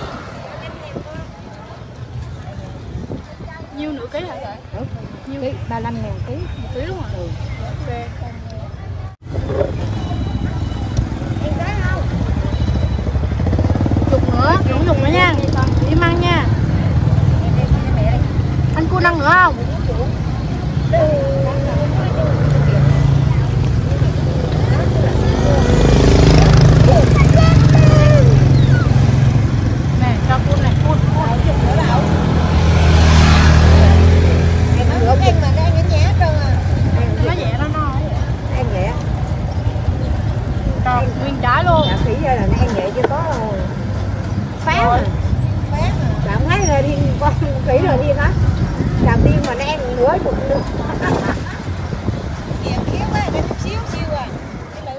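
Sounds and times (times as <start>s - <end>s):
motor scooters rumbling past: 0.0s - 54.9s
scattered voices: 0.0s - 54.9s.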